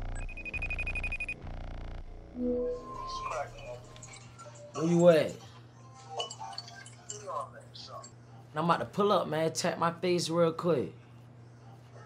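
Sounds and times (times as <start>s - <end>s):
electronic phone ringtone: 2.4s - 3.8s.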